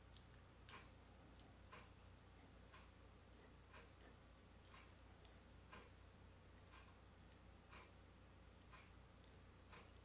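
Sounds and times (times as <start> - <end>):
faint ticks: 0.0 - 10.0
low room hum: 0.0 - 10.0.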